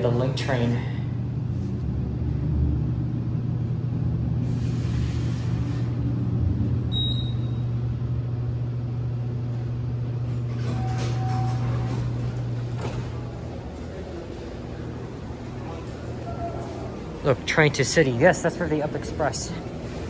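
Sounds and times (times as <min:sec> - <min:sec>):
elevator hum and rumble: 0:00.0 - 0:20.0
elevator doors sliding open: 0:04.2 - 0:07.9, 0:09.2 - 0:17.2.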